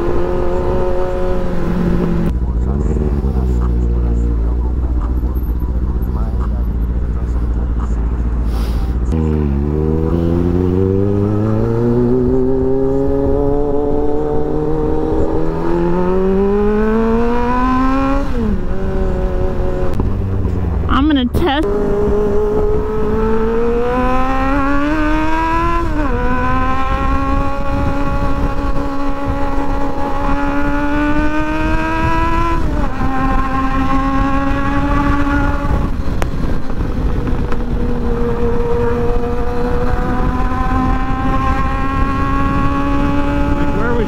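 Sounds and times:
motorcycle engine accelerating: 0:00.0 - 0:44.0
wind rushing over microphone: 0:00.0 - 0:44.0.

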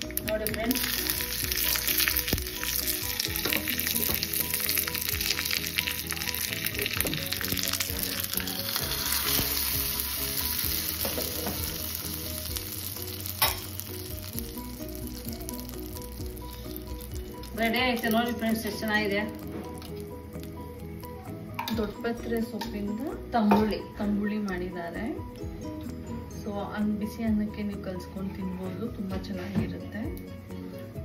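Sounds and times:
spices sizzling and crackling in a pan: 0:00.0 - 0:23.1.

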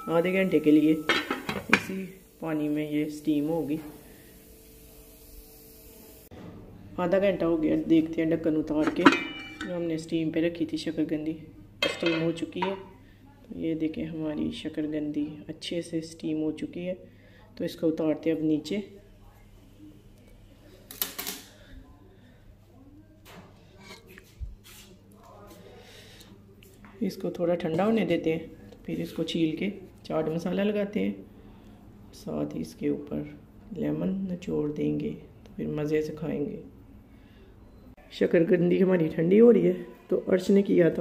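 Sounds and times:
metal pot clank: 0:00.0 - 0:01.9, 0:08.8 - 0:09.8.

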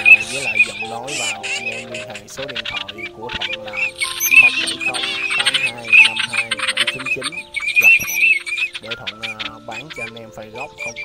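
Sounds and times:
ducks calling: 0:00.0 - 0:11.0
steady held tones: 0:00.0 - 0:11.0.

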